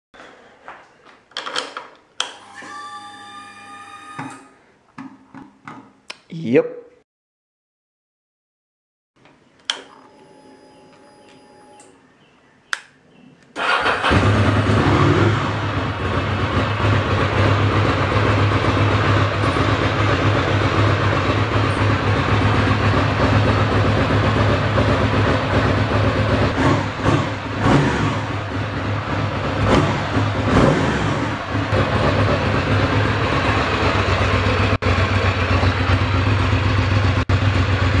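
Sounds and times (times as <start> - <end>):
motorcycle engine idling: 15.5 - 27.6, 28.2 - 38.0.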